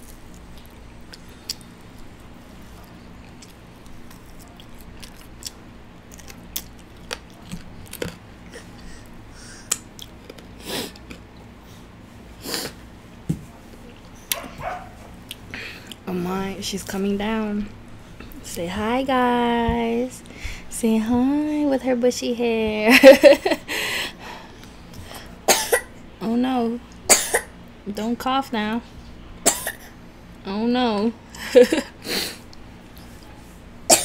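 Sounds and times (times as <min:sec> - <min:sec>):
chewing food close up: 0:00.0 - 0:08.8, 0:09.6 - 0:11.6
toddler coughing: 0:25.5 - 0:25.9, 0:27.1 - 0:27.5, 0:29.4 - 0:29.9.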